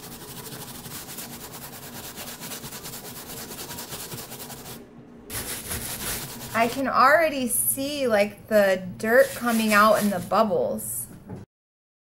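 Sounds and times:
brush scrubbing sneaker sole: 0:00.0 - 0:06.7, 0:09.1 - 0:10.3.

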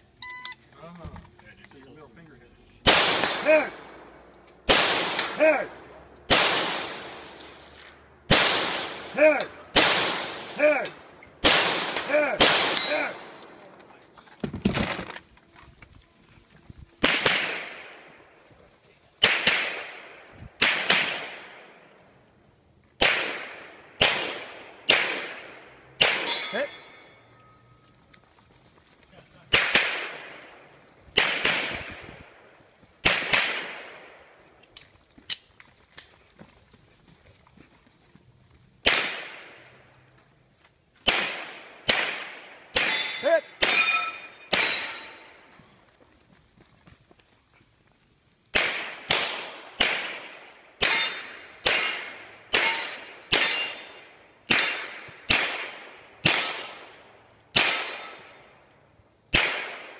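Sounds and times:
handgun shots echoing: 0:02.9 - 0:04.0, 0:04.7 - 0:05.6, 0:06.3 - 0:07.6, 0:11.4 - 0:13.6, 0:17.0 - 0:18.1, 0:19.2 - 0:21.7, 0:23.0 - 0:26.9, 0:29.5 - 0:30.4, 0:38.8 - 0:39.6, 0:41.1 - 0:45.4, 0:48.6 - 0:58.5, 0:59.3 - 0:59.9
steel targets ringing: 0:26.1 - 0:27.8, 0:42.8 - 0:45.4, 0:50.8 - 0:54.9.

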